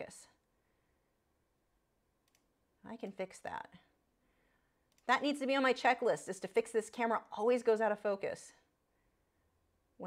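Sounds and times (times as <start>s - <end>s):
woman speaking: 0.0s - 0.4s, 2.8s - 3.9s, 5.0s - 8.7s.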